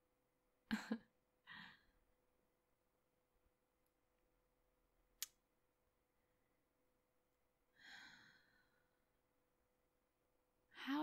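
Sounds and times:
woman's breathy sigh: 7.8s - 8.8s
woman speaking: 10.8s - 11.0s.

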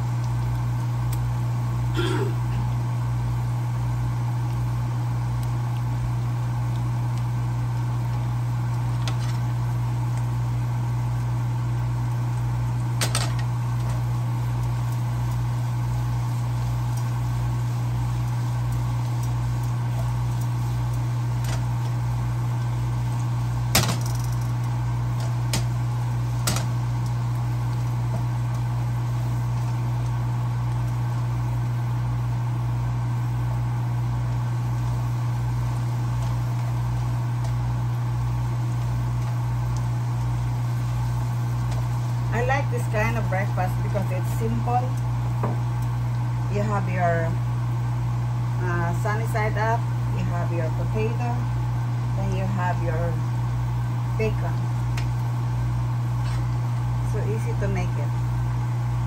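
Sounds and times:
potatoes sizzling in a pan: 0.0s - 59.0s
steady low hum: 0.0s - 59.0s.

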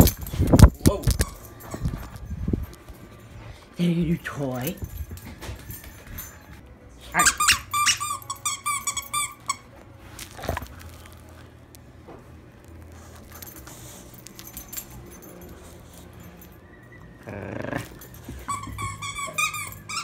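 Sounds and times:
dog toy squeaking: 1.0s - 1.9s, 7.1s - 9.7s, 17.3s - 20.0s.

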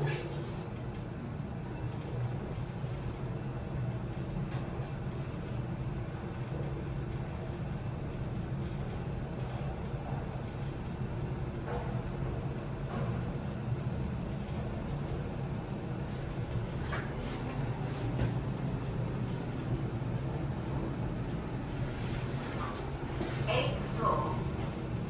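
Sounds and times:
elevator car humming upward: 0.0s - 25.0s.

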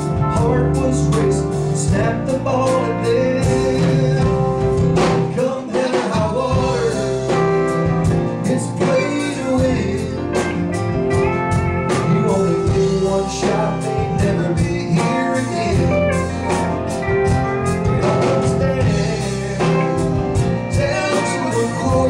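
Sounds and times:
electric guitar lead: 0.0s - 5.4s, 6.6s - 22.0s
country-blues band playing: 0.0s - 22.0s.

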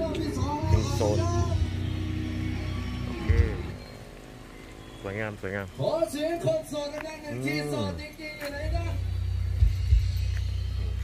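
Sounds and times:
music over loudspeakers: 0.0s - 4.4s, 6.6s - 11.0s.

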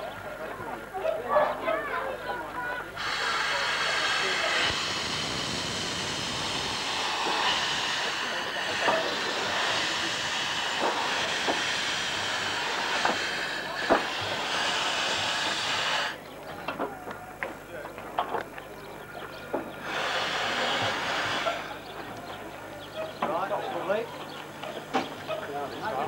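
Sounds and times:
steam locomotive hissing steam: 2.0s - 26.0s.

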